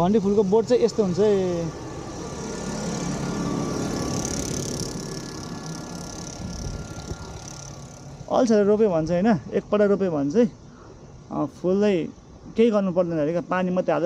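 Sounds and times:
vehicle passing on road: 0.0 - 9.1.

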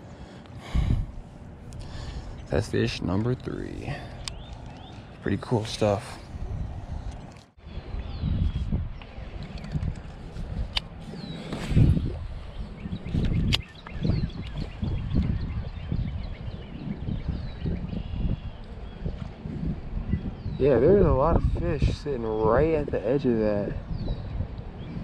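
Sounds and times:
wind buffeting microphone: 0.6 - 25.0.

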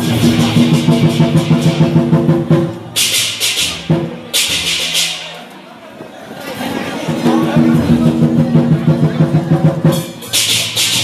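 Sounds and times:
drum rapid roll: 0.0 - 5.2, 6.7 - 11.0.

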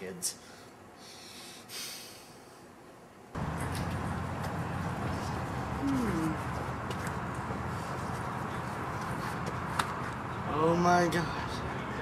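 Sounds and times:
sharp breath through the nose: 0.4 - 2.6.

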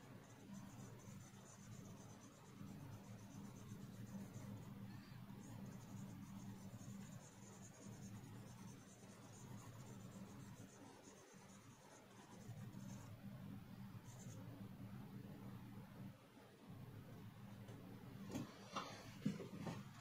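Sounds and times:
pencil scratching on paper: 0.0 - 13.2, 14.0 - 14.4
low steady hum: 0.0 - 20.0.

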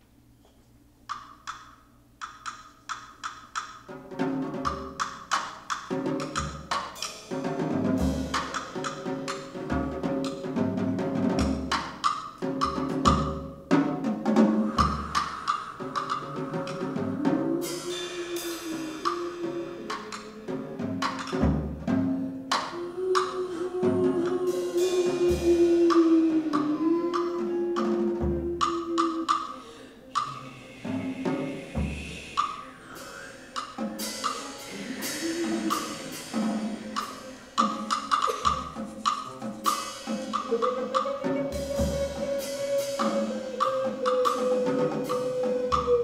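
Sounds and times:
jazz drum kit: 0.3 - 46.0
cymbal wash: 14.4 - 21.5, 23.5 - 38.8.

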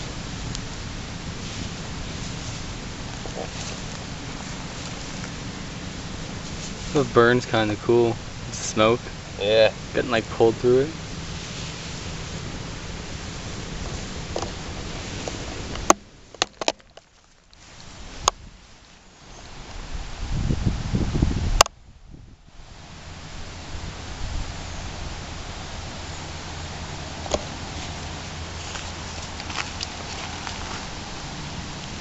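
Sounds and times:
low rumble: 0.0 - 16.4
wind gusting on microphone: 0.0 - 16.9, 17.6 - 32.0.

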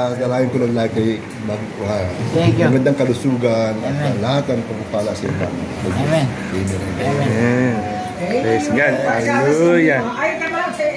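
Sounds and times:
people talking: 0.0 - 10.9.

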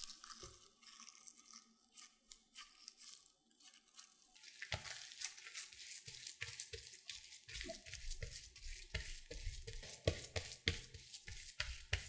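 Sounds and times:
hands squishing oiled dough: 0.0 - 12.0.

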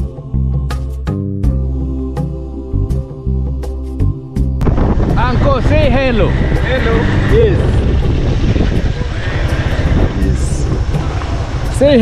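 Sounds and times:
motorcycle engine rumbling: 4.6 - 12.0
voices: 5.2 - 8.0.

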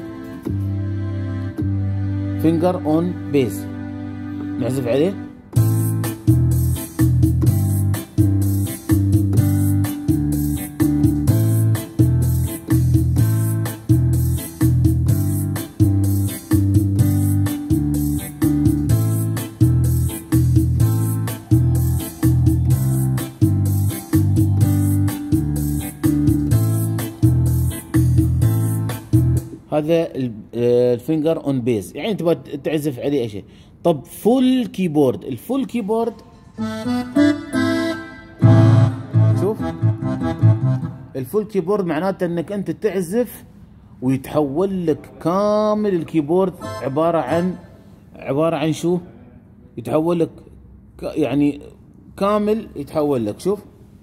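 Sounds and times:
electric piano chords: 0.0 - 29.6, 36.6 - 41.1
low bass line: 5.5 - 29.6, 38.4 - 41.0.

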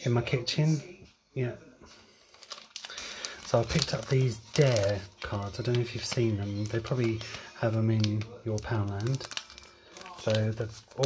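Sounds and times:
plastic packaging crinkling: 2.2 - 11.0.

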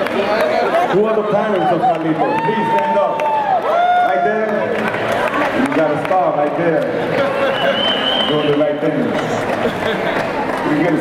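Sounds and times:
audience murmur: 8.9 - 11.0.

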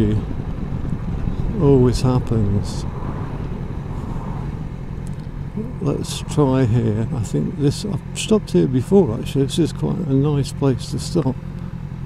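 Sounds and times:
motorcycle engine low rumble: 0.0 - 12.0.

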